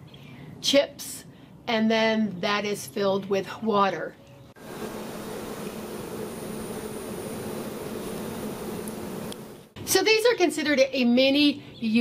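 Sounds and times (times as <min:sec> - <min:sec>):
low buzzing hum with hiss: 0:04.4 - 0:10.0.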